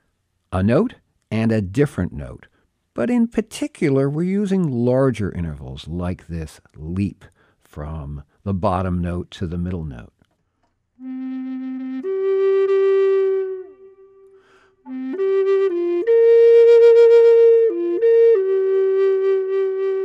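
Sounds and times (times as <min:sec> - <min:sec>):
flute melody: 0:11.0 - 0:20.0.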